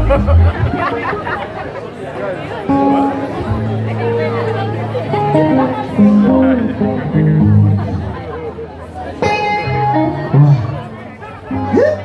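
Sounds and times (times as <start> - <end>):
band instruments playing loose notes: 0.0 - 1.0
people talking: 0.0 - 12.0
guitar notes: 2.7 - 12.0.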